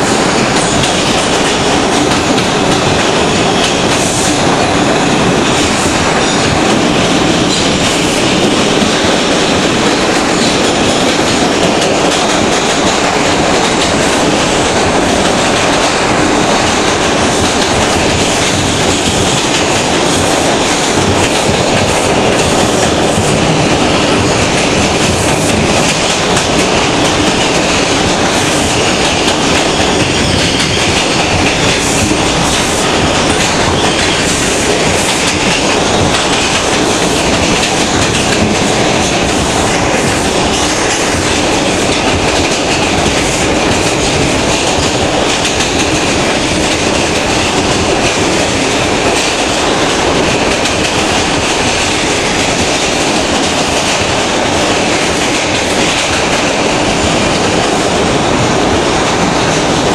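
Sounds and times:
subway wheels rumbling on rail: 0:00.0 - 0:59.9.

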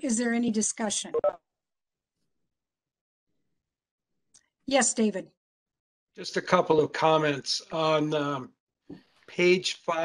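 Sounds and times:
woman speaking: 0:00.0 - 0:01.3, 0:04.7 - 0:05.4.

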